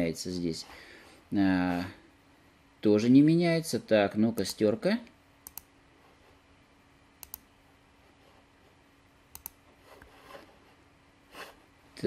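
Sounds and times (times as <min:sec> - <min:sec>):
computer mouse clicks: 0:05.4 - 0:05.7, 0:07.2 - 0:07.5, 0:09.3 - 0:10.1.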